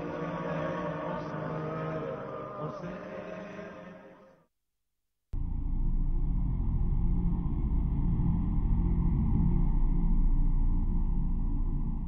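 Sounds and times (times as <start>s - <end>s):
deep rumbling drone: 5.4s - 12.0s.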